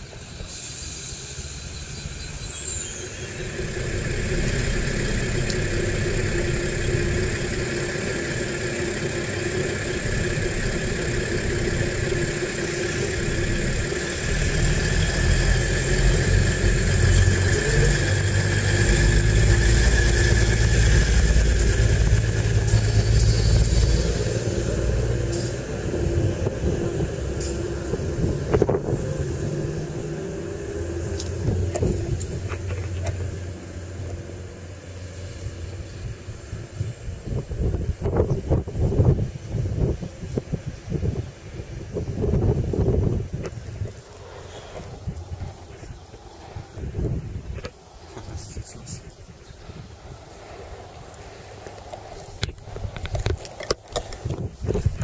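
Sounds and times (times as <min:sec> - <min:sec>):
diesel train engines whining: 0:00.0 - 0:55.0
low train rumble: 0:00.0 - 0:55.0.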